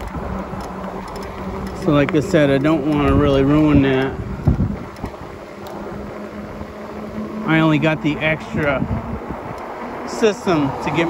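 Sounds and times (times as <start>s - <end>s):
electric bike motor hum: 0.0s - 11.0s
tyre noise: 0.0s - 11.0s
wind noise: 0.0s - 11.0s.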